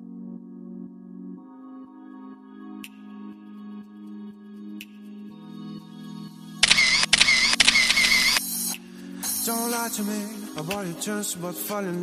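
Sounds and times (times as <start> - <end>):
soft ambient music: 0.0 - 12.0
camera sound effect: 6.6 - 8.4.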